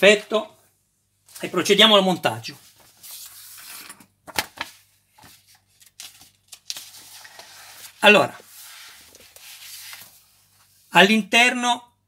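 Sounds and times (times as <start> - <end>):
paper pages rustling: 2.5 - 10.8.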